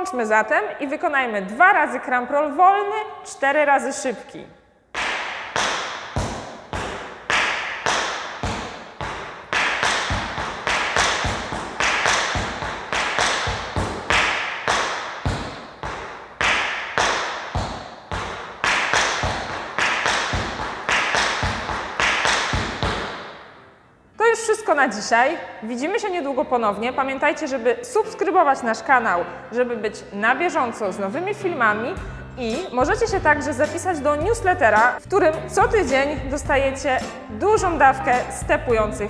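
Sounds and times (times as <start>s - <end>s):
tap shoes on wooden floor: 5.0s - 23.3s.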